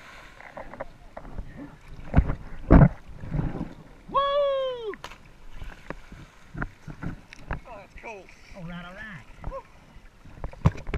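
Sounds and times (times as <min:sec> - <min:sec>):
water sounds: 0:00.0 - 0:10.9
person yelling: 0:04.1 - 0:05.0.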